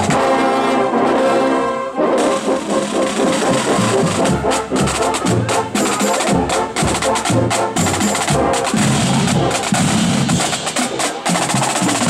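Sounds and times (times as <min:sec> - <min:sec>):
brass playing: 0:00.0 - 0:12.0
marching drums: 0:00.0 - 0:12.0.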